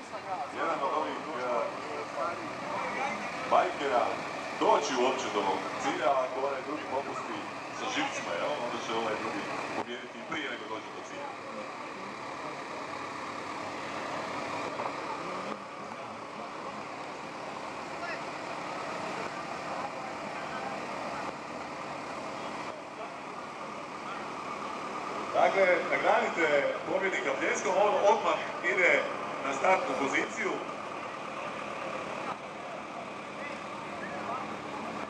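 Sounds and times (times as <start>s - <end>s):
motorcycle engines running: 0.0s - 35.0s
murmur of voices: 0.0s - 35.0s.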